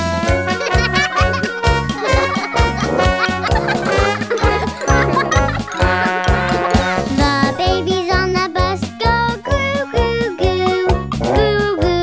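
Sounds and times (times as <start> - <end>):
instrumental children's music: 0.0 - 12.0.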